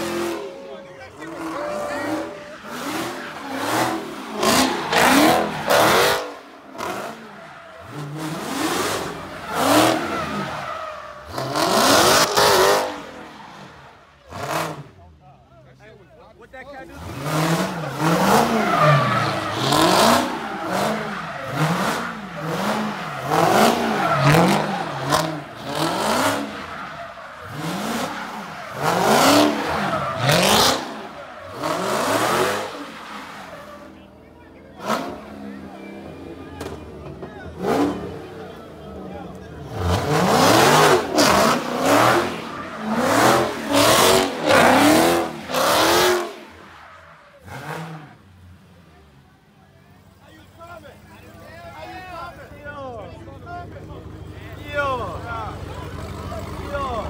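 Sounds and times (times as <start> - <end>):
tyres squealing: 0.0 - 13.6, 16.9 - 34.1
car engine revving: 0.0 - 15.2, 16.8 - 49.1.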